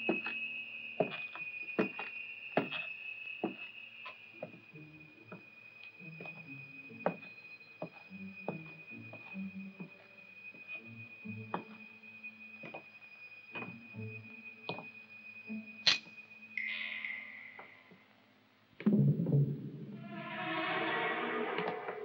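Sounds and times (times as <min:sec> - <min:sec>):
faint steady high whine: 0:00.0 - 0:18.8.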